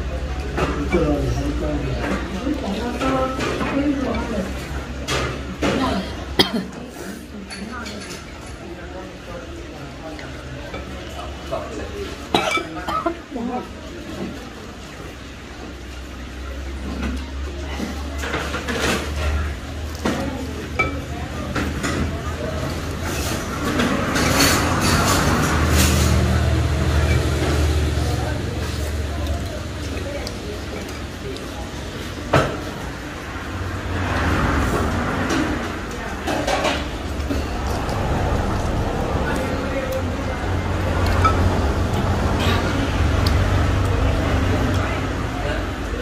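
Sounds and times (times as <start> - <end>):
person coughing: 5.8 - 6.8.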